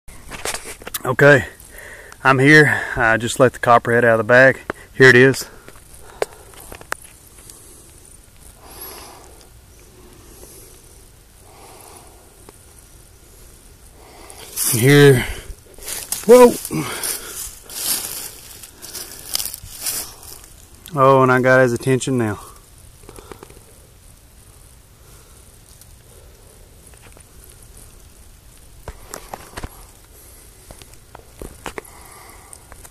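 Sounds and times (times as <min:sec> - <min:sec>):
soft breathy rushing sounds: 0:04.6 - 0:20.8, 0:22.4 - 0:28.0, 0:28.8 - 0:32.9
dry leaves crunching: 0:14.1 - 0:20.9
faint handling noise: 0:14.3 - 0:20.9.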